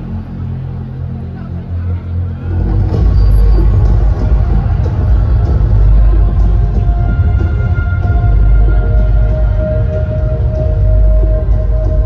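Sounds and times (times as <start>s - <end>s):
deep bass rumble over pa: 2.4s - 12.0s.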